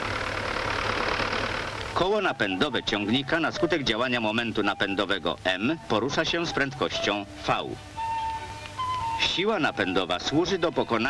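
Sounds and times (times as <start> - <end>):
tractor engine running: 0.0 - 3.4.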